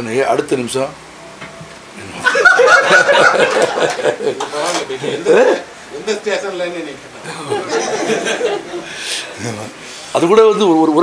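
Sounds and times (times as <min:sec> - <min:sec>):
man chuckling: 0:07.2 - 0:09.6.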